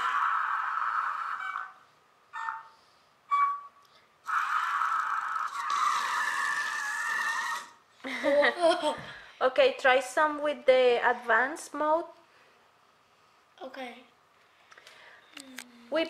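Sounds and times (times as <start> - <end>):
toy robot wheel motors whirring: 4.3 - 7.8
child laughing: 7.6 - 9.2.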